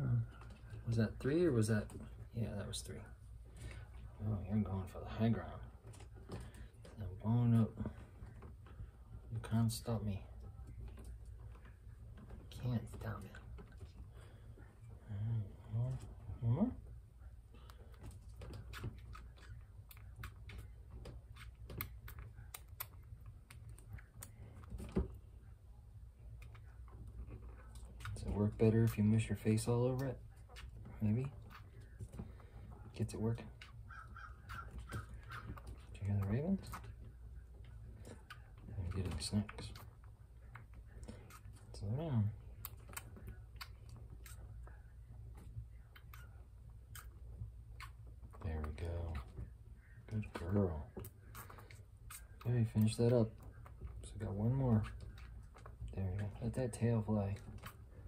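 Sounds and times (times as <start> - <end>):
low steady hum: 0.0 - 58.0
baby squirrel suckling clicks: 17.6 - 25.1, 50.0 - 58.0.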